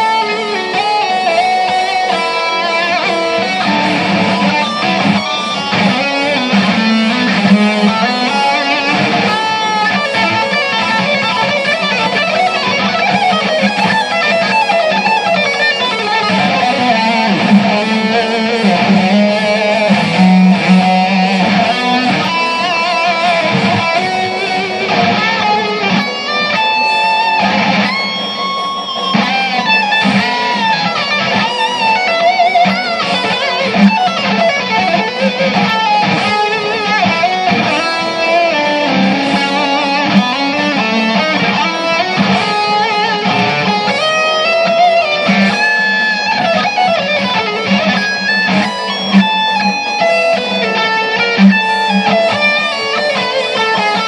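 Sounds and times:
guitar playing quick notes and chords: 0:00.0 - 0:54.0.

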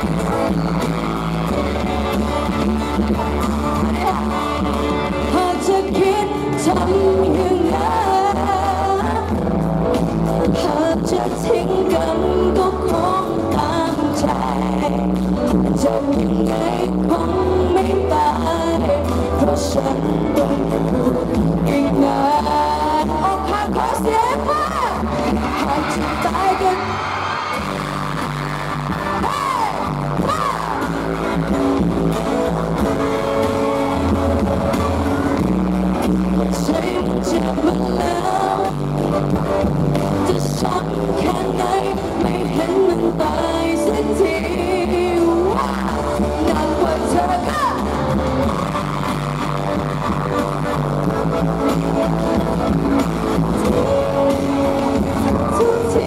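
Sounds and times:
drum kit and bass guitar: 0:00.0 - 0:26.6, 0:27.5 - 0:56.0
live band playing pop-rock: 0:00.0 - 0:56.0
person singing: 0:00.0 - 0:56.0.

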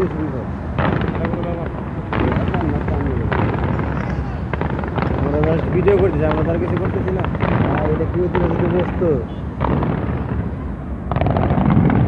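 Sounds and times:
fireworks bangs: 0:00.0 - 0:12.0
fireworks crackle: 0:00.0 - 0:12.0.

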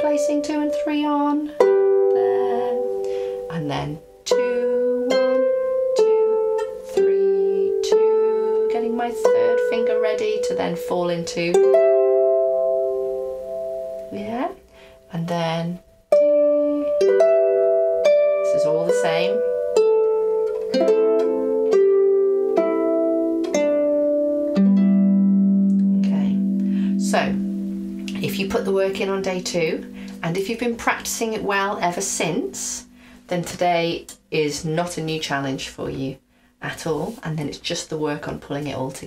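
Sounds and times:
harp strings plucked: 0:15.8 - 0:34.5.

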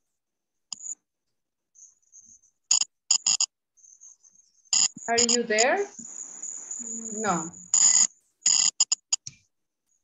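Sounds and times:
faint high whine: 0:01.8 - 0:08.2.

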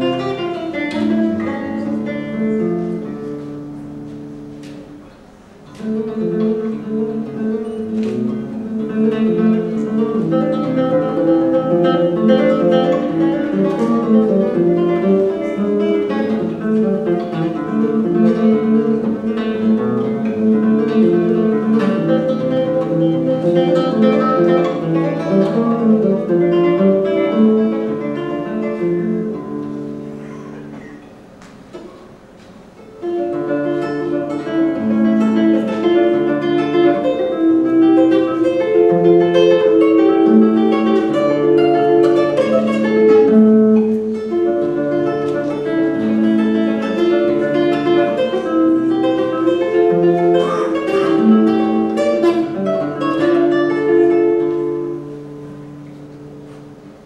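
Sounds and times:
fingerstyle classical guitar: 0:00.0 - 0:57.0.

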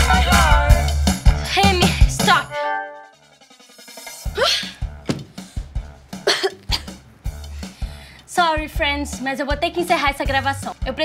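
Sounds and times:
girl coughing: 0:04.4 - 0:04.8, 0:06.2 - 0:07.0.

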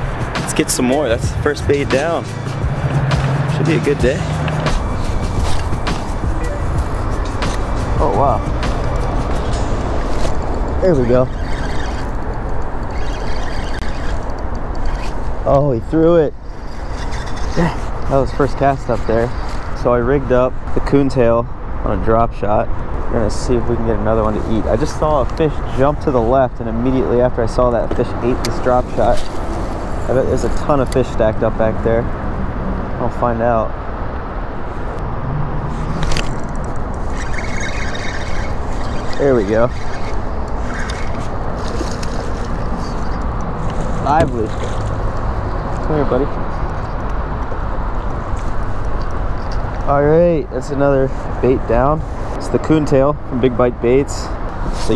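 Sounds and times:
road traffic rumble: 0:00.0 - 0:54.9.

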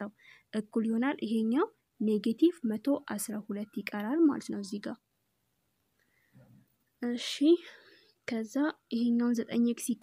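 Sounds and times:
person speaking: 0:00.0 - 0:05.1, 0:07.0 - 0:10.0.

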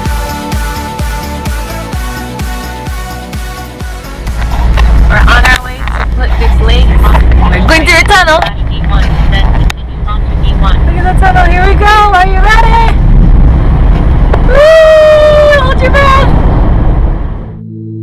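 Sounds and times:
car engine and road noise: 0:00.0 - 0:18.0
voices talking: 0:05.1 - 0:13.0.

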